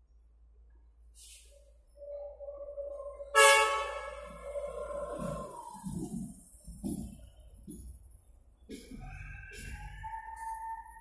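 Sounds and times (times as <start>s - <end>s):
train horn blast: 3.3s - 4.5s.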